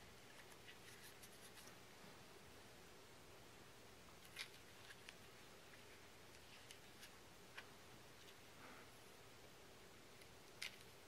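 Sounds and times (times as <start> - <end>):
soft ticks of handling paper: 0.3 - 1.8, 4.2 - 8.4.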